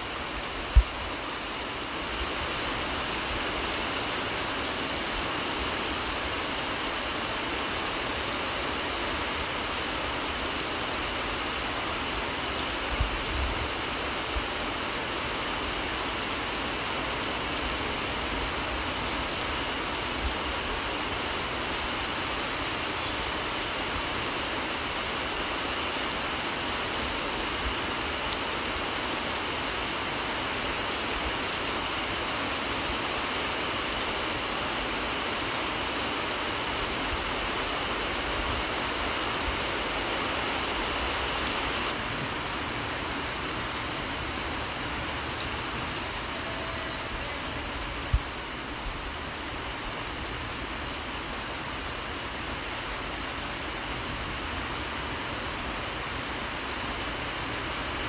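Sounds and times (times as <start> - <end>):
heavy rain pouring: 0.0 - 58.0.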